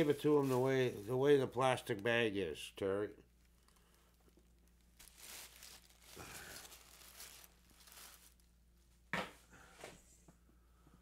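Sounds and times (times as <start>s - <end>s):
plastic packing rustling: 0.0s - 2.0s, 3.4s - 8.6s.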